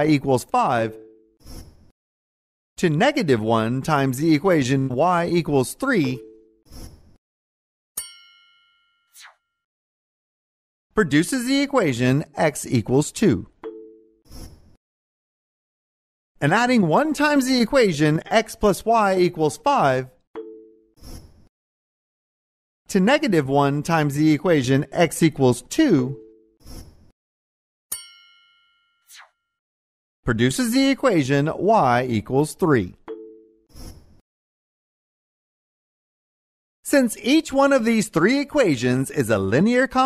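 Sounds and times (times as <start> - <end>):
synthesized bell-like chime: 8.0 - 9.1, 27.9 - 29.0.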